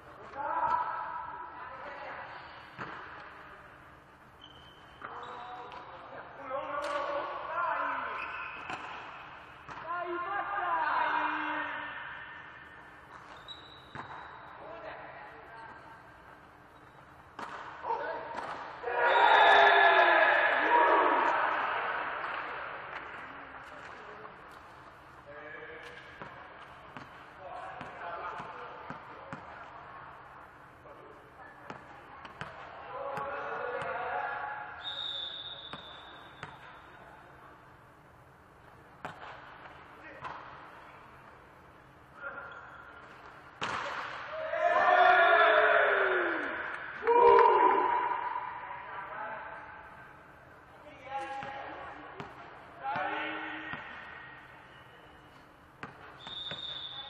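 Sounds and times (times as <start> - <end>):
ball bouncing on gym floor: 2.7 - 3.4, 8.6 - 9.9, 13.1 - 14.5, 16.8 - 18.8, 25.8 - 29.6, 31.6 - 34.0, 35.7 - 36.8, 39.0 - 40.7, 43.0 - 44.3, 51.2 - 54.1, 55.8 - 56.8
players' voices: 17.3 - 37.9.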